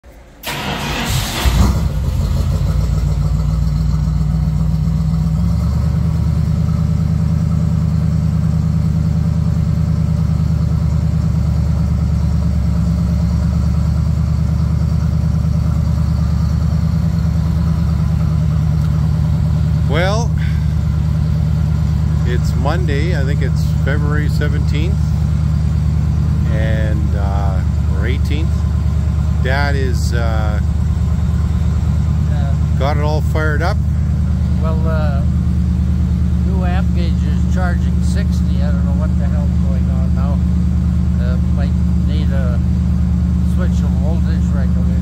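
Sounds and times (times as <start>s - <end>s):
engine starting and idling: 0.0s - 7.0s.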